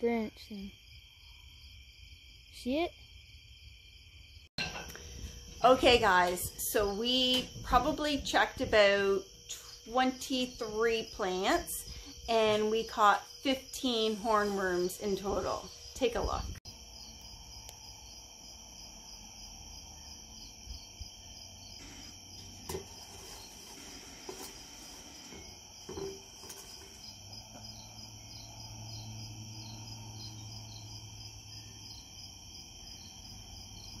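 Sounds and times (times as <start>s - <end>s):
crickets chirping: 0.0s - 34.0s.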